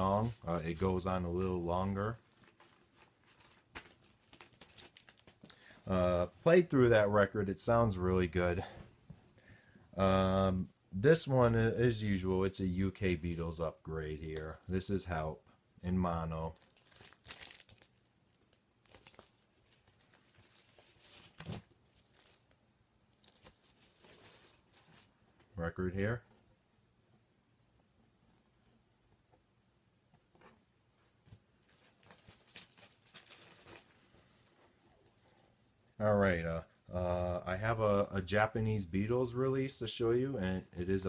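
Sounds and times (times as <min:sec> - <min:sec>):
light crinkling: 0:00.0 - 0:05.8, 0:11.8 - 0:15.0, 0:16.4 - 0:25.5
vinyl record sleeve rustling: 0:00.0 - 0:06.8, 0:16.4 - 0:25.5, 0:30.1 - 0:36.0.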